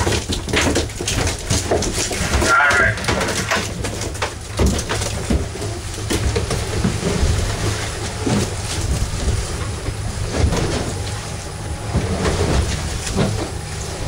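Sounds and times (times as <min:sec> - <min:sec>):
water splashing against hull: 0:00.0 - 0:14.0.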